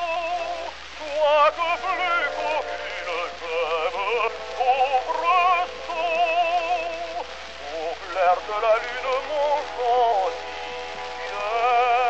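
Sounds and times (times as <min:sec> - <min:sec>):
instrumental accompaniment: 0:00.0 - 0:12.0
tenor voice singing with vibrato: 0:00.0 - 0:12.0.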